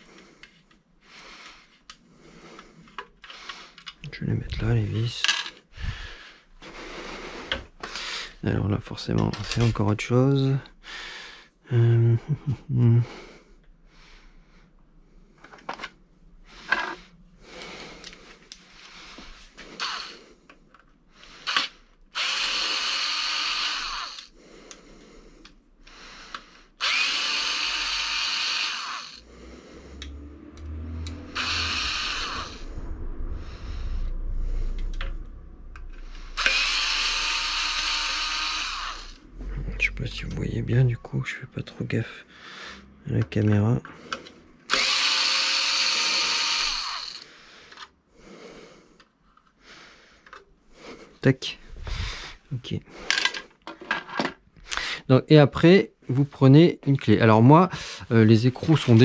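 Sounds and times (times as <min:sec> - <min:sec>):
cordless electric screwdriver running: 0:19.8 - 0:20.2, 0:21.5 - 0:24.3, 0:26.8 - 0:29.3, 0:31.1 - 0:32.6, 0:36.4 - 0:39.2, 0:44.7 - 0:47.3.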